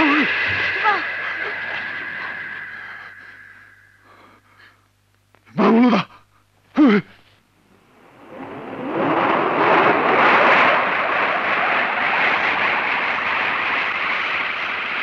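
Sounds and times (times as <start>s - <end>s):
loud rushing roar: 0.0s - 4.5s, 7.8s - 15.0s.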